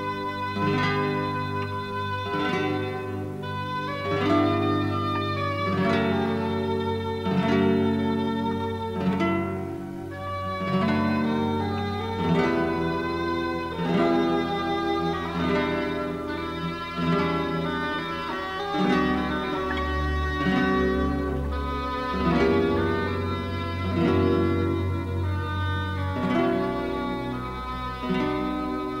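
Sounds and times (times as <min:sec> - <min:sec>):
classical guitar plucking: 0:00.0 - 0:29.0.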